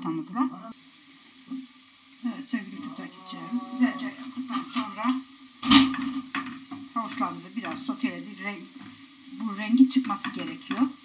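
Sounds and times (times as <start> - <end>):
carrots frying in oil: 0.0 - 11.0
low talking: 2.3 - 5.2.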